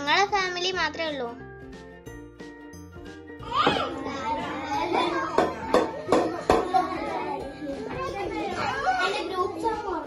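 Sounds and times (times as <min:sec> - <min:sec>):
girls chattering: 0:03.4 - 0:10.0.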